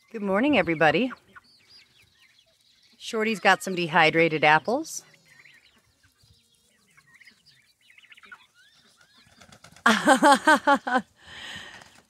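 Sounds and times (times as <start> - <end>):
chickens and turkeys peeping: 0.0 - 9.8.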